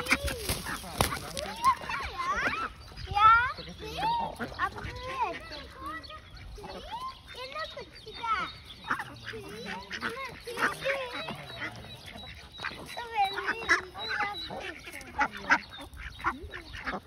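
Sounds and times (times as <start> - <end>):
ducks quacking: 0.0 - 17.0.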